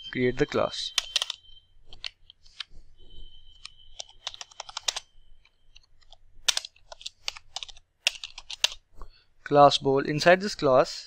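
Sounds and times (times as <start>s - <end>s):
typing on computer keyboard: 0.9s - 2.2s, 3.6s - 5.1s, 5.8s - 8.8s.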